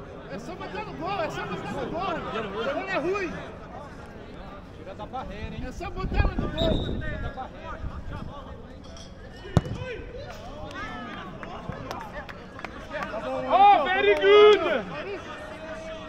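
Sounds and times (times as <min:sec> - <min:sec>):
players shouting: 0:09.5 - 0:16.0.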